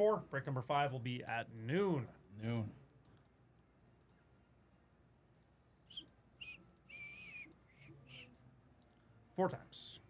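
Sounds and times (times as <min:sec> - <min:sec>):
computer mouse clicks: 0:03.0 - 0:03.4, 0:05.3 - 0:09.0.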